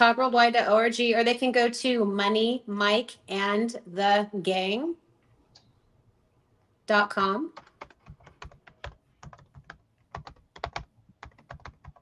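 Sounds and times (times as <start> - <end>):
computer keyboard typing: 7.6 - 12.0.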